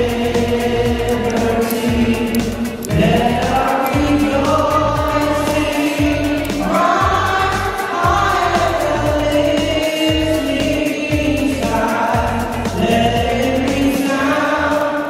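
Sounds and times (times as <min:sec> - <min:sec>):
low accompaniment: 0:00.0 - 0:14.7
woman singing into a microphone: 0:00.0 - 0:15.0.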